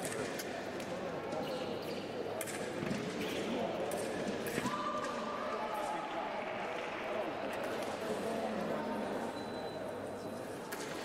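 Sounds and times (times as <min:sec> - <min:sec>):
voices talking in a hall: 0:00.0 - 0:11.0.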